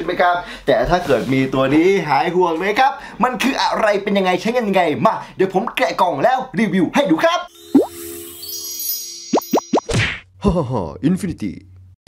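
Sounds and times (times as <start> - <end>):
held chord with rising shimmer: 7.5 - 9.8.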